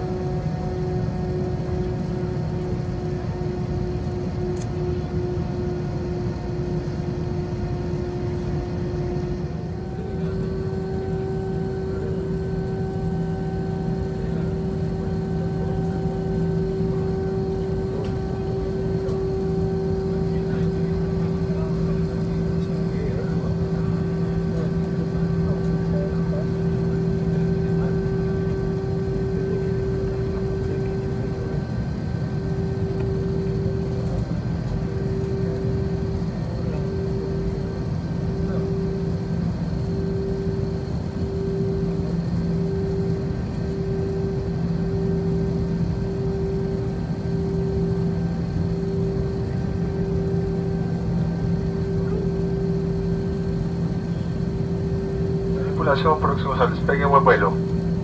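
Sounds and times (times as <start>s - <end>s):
jet engine hum and rumble: 0.0s - 58.0s
pulsing droning tone: 0.0s - 58.0s.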